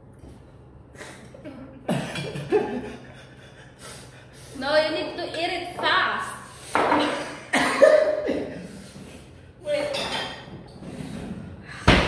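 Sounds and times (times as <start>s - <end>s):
person coughing: 7.0s - 8.6s.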